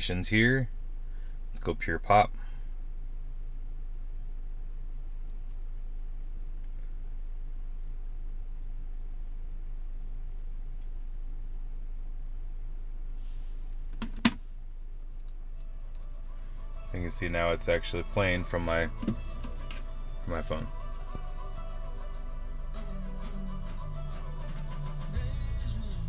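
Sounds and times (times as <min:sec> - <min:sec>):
low hum inside car: 0:00.0 - 0:26.0
faint music through car speakers: 0:15.0 - 0:26.0.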